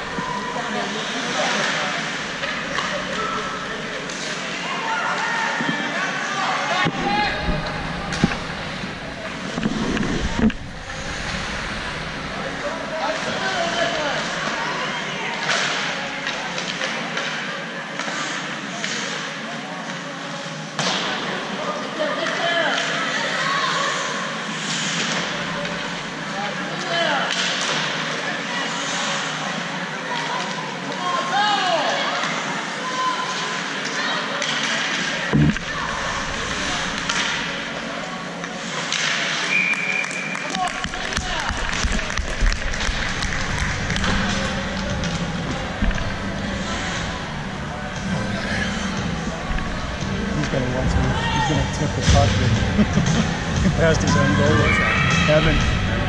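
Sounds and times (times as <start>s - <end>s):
hockey sticks and puck clacking: 27.3s - 28.0s, 36.8s - 37.6s, 38.4s - 46.1s
players and spectators shouting: 54.0s - 56.0s.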